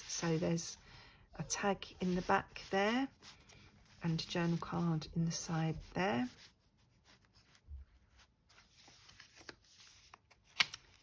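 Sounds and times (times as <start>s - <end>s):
paper pages rustling: 2.0s - 11.0s.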